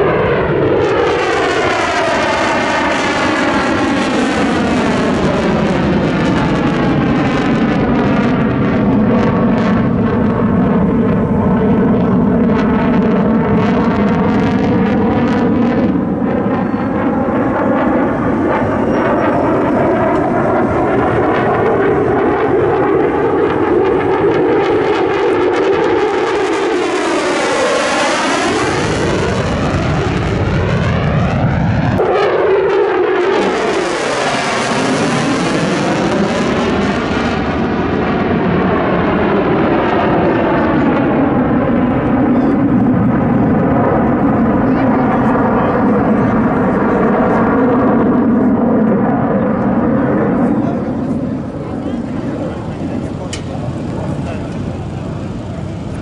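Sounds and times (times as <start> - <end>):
fighter jet engine roaring: 0.0 - 56.0.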